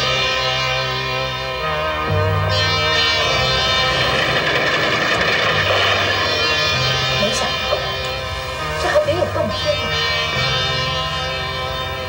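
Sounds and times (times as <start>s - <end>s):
background music with low tones: 0.0s - 12.0s.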